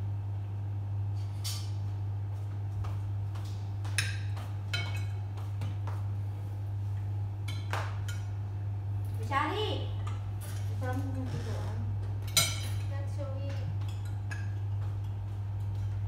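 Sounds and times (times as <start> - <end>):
steady low hum: 0.0 - 16.0
utensils clinking against plates: 3.9 - 5.2, 10.0 - 16.0.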